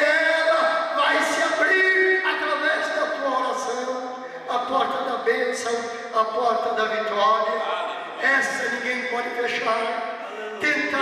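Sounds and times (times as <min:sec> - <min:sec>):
man preaching into microphone: 0:00.0 - 0:11.0.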